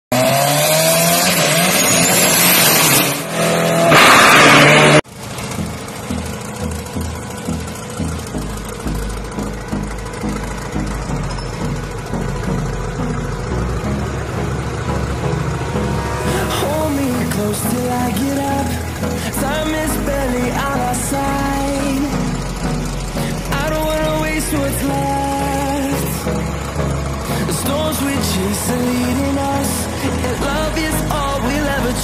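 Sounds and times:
dragster engine revving: 0.1 - 32.0
electronic music with deep bass: 4.5 - 32.0.

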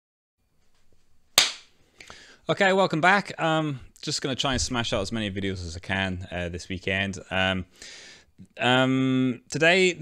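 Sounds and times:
sharp smack: 1.4 - 1.7.

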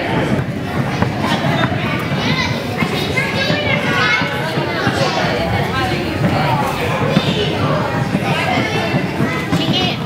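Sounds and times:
children calling out and chattering: 0.0 - 10.0
hubbub of a hall: 0.0 - 10.0.

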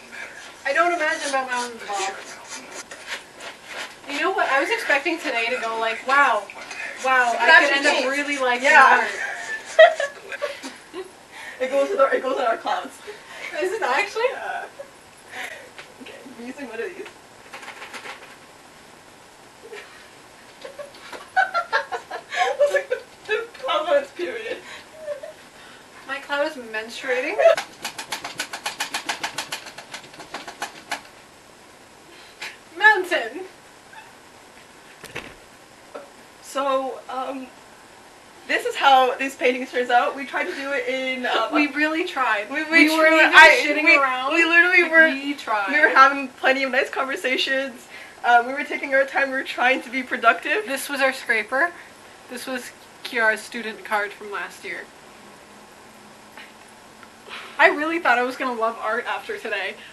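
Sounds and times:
brush scrubbing paint on canvas: 0.3 - 4.9
paintbrush tapping canvas: 27.6 - 31.1.

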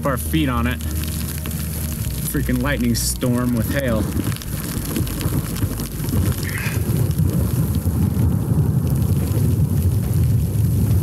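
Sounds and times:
low rumble: 0.0 - 11.0
rain pattering on jacket hood: 0.0 - 11.0.

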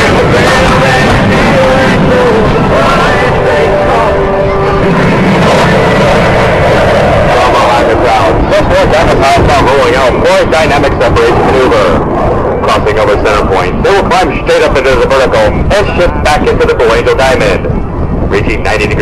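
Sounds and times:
jet engines roaring: 0.0 - 19.0
people's voices: 0.0 - 19.0.

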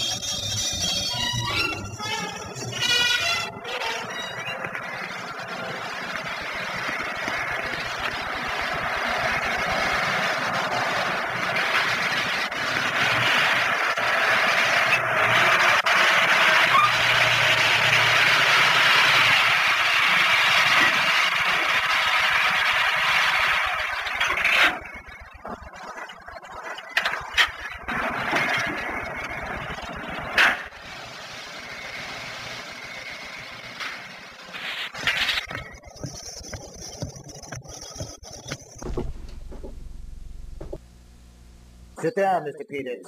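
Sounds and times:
road noise: 0.0 - 41.8
air-cooled car engine: 5.4 - 25.6, 27.0 - 42.0.

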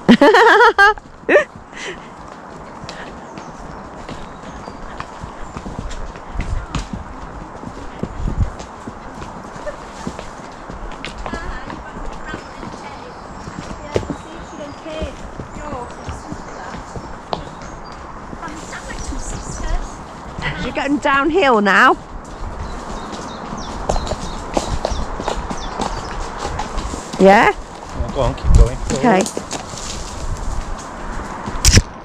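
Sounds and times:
horse hooves clip-clopping: 0.0 - 32.0
low rumbles on microphone: 3.8 - 9.8, 22.0 - 32.0.

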